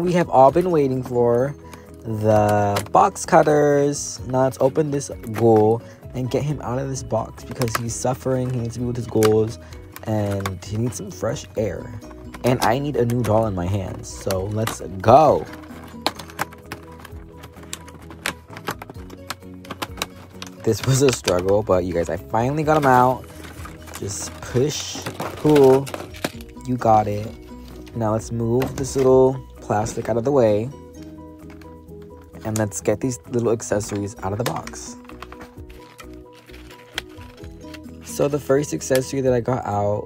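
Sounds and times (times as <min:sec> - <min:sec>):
packaging crackling: 0:00.0 - 0:39.2
background music: 0:00.0 - 0:40.0.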